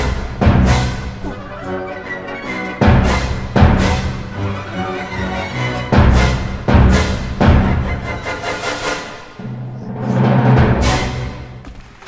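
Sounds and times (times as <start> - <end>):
loud full-orchestra chord: 0.0 - 11.6
orchestra holding soft notes: 0.0 - 11.6.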